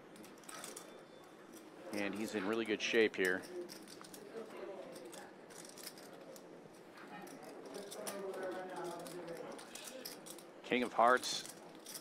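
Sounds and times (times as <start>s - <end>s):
murmur of voices: 1.7s - 12.0s
poker chips clicking: 4.9s - 6.5s, 7.3s - 12.0s.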